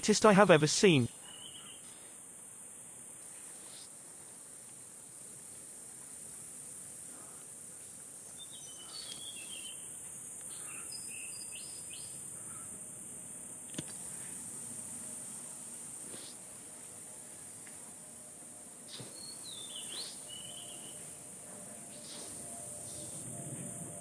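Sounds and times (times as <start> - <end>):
high-pitched insect drone: 18.9 - 24.0.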